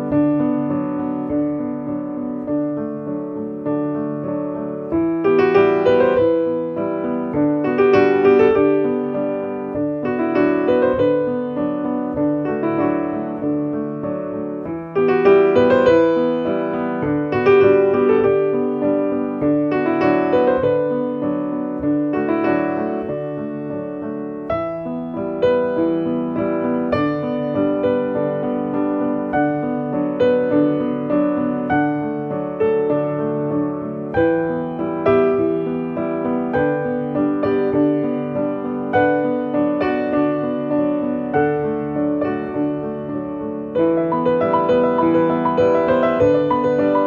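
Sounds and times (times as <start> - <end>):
piano music: 0.0 - 47.0.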